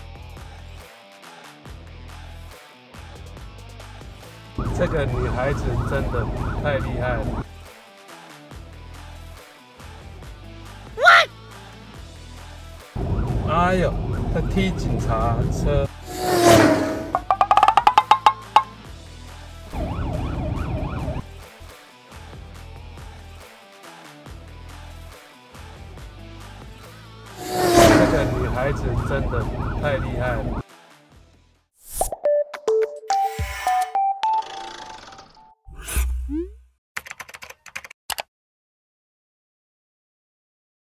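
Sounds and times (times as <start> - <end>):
siren wailing: 4.6 - 7.4, 19.8 - 21.2, 27.4 - 30.6
rising wood-block clicks: 17.3 - 18.7.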